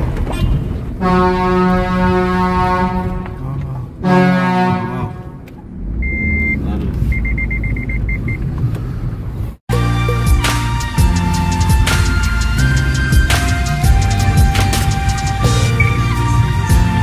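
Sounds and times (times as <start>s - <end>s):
engine rumble: 0.0s - 17.0s
vehicle horn blasts: 1.0s - 3.4s, 4.0s - 5.4s.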